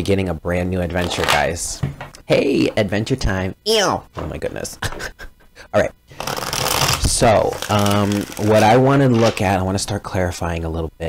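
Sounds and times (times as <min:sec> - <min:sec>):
cards shuffling flutter: 0:06.2 - 0:09.4.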